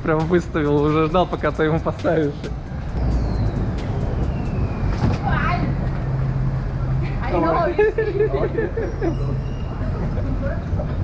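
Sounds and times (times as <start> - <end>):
street traffic rumble: 0.0 - 11.0
vehicle engine humming: 0.0 - 11.0.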